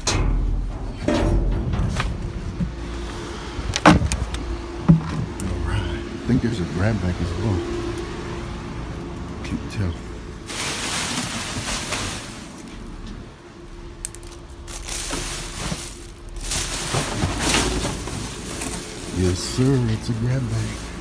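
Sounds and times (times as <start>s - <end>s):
man talking: 5.4s - 7.9s, 9.4s - 10.2s, 19.1s - 21.0s
plastic bags and cardboard rustling: 10.4s - 21.0s.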